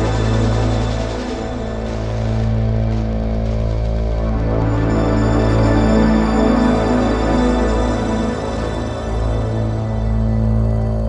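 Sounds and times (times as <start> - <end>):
deep bass drone: 0.0 - 11.0.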